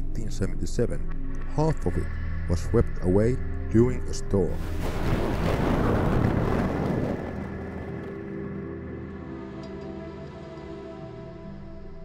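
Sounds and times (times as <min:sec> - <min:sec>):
slow background music: 0:00.0 - 0:12.0
loud rush of noise: 0:04.6 - 0:08.7.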